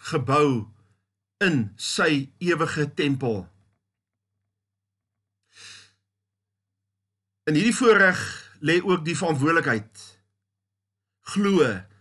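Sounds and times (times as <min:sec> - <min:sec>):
man's short breath: 0:05.5 - 0:06.0.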